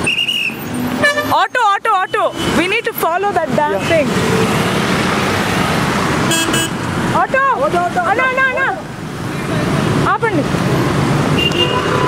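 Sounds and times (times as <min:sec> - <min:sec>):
buses driving past: 0:00.0 - 0:12.0.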